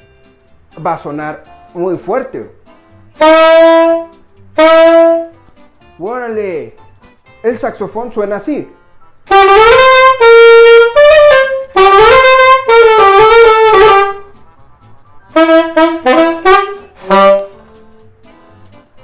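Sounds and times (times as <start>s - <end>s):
saxophone playing: 3.1s - 5.4s, 9.3s - 14.4s, 15.3s - 17.7s.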